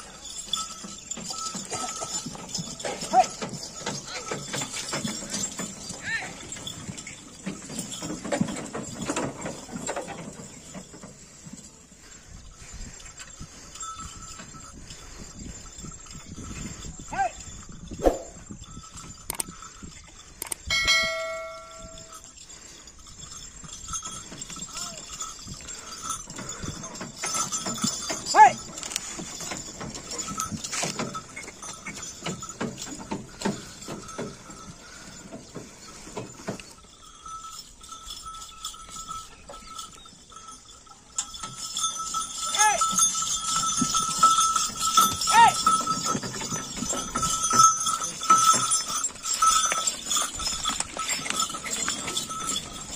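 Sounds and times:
cart knocking and rattling: 0.0s - 11.9s, 23.2s - 52.9s
hoof steps: 0.0s - 52.9s
bell ringing: 20.7s - 22.4s, 36.8s - 52.9s.

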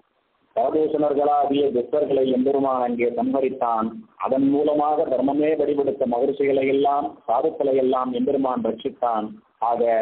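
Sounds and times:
man talking: 0.6s - 10.0s.

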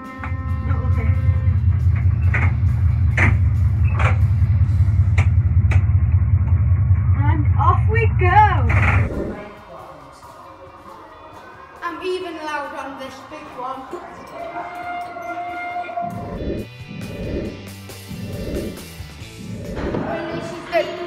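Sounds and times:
diesel engine rumble: 0.6s - 9.4s.

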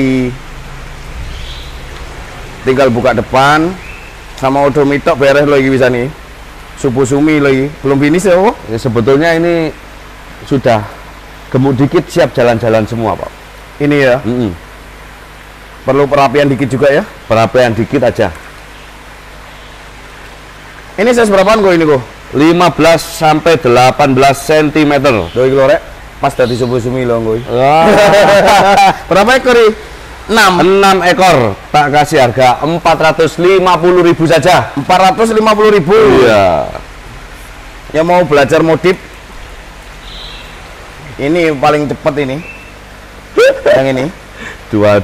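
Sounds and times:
water rushing: 0.0s - 14.5s, 19.8s - 44.9s.

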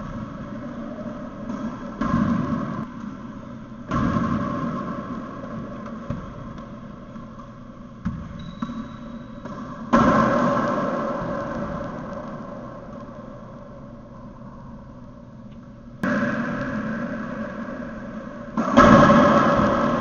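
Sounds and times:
racquetball hits echoing: 0.0s - 13.6s, 16.0s - 20.0s
steady background hum: 0.0s - 20.0s.

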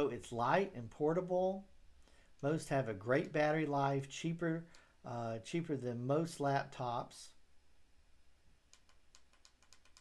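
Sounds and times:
typing on computer keyboard: 8.7s - 10.0s.

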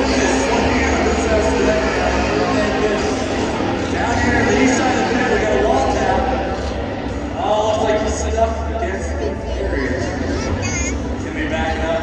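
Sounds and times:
indistinct speech: 0.0s - 12.0s
steady noisy background: 0.0s - 12.0s.

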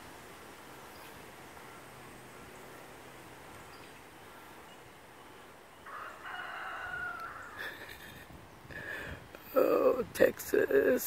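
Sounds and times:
rooster crowing: 5.8s - 7.8s.

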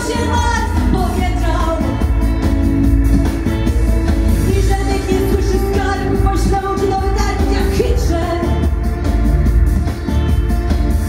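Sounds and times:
woman singing into a microphone: 0.0s - 2.3s, 4.4s - 8.9s
amplified music with heavy bass: 0.0s - 11.0s.

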